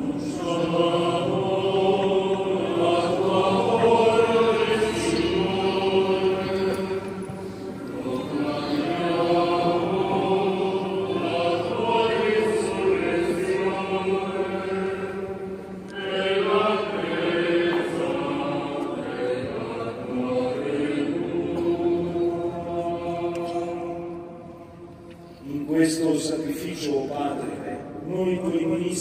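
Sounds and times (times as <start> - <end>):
voices chanting in church: 0.0 - 29.0.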